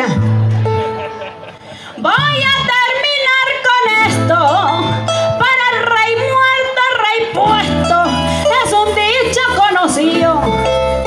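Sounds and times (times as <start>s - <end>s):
bass: 0.0s - 11.0s
cuatros strumming: 0.0s - 11.0s.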